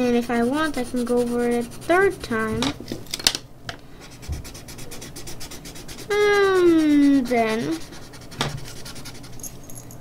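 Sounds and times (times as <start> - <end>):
pencil scratching on paper: 0.0 - 2.5, 4.0 - 9.4.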